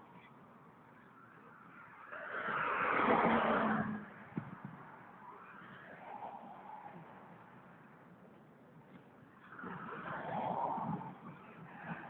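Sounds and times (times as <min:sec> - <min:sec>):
vehicle passing on road: 0:00.2 - 0:12.0.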